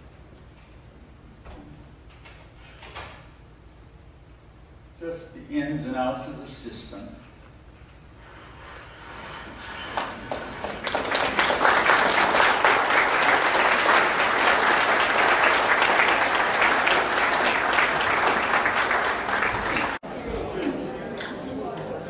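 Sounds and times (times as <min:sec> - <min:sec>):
audience applauding: 0:09.8 - 0:20.0.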